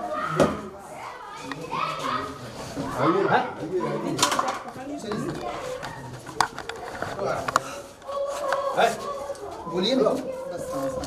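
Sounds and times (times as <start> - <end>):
people speaking and calling out: 0.0 - 11.0.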